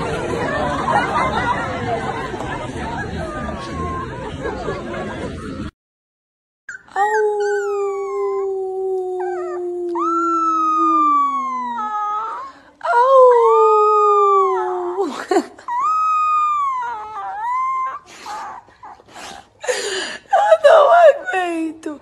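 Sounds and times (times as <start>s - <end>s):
puppy howling: 6.7s - 15.1s, 15.7s - 19.0s.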